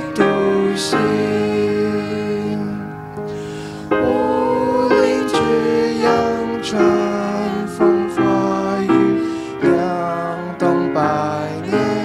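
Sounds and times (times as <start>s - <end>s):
assembly singing: 0.0s - 12.0s
piano chords: 0.0s - 12.0s.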